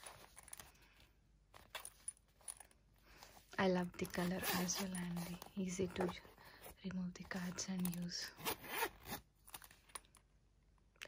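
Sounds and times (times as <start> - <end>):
wallet handling sounds: 0.0 - 10.2.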